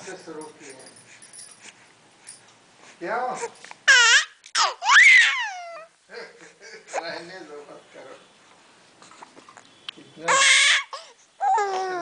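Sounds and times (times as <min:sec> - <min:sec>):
baby crying: 0:03.9 - 0:05.9, 0:10.3 - 0:12.0.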